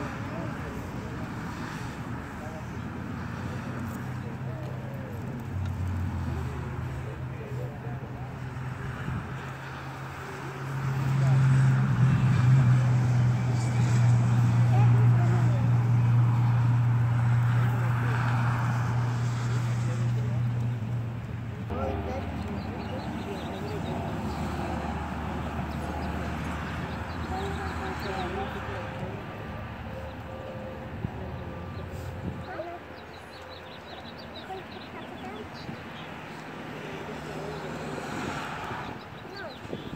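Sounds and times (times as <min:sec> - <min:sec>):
distant murmured voices: 0:00.0 - 0:39.9
freeway traffic rumble: 0:00.0 - 0:39.9.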